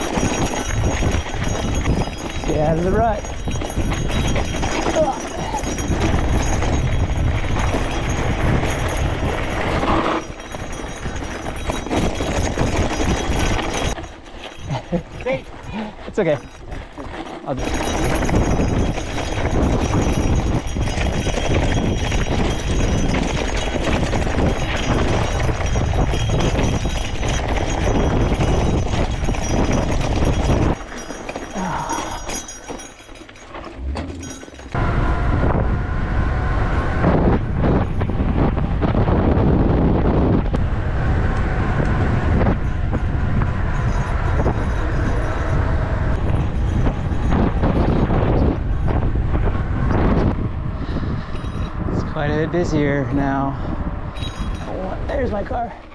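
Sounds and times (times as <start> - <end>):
wind rushing over microphone: 0.0 - 16.9, 17.5 - 31.0, 33.8 - 55.9
bike tyres rattling on rocky trail: 0.0 - 34.8, 42.0 - 55.9.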